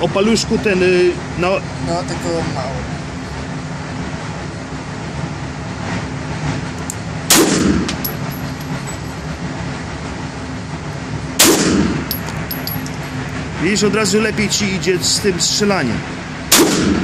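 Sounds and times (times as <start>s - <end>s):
background hum: 0.0s - 17.0s
metallic tinkle: 8.0s - 9.3s, 12.1s - 13.2s.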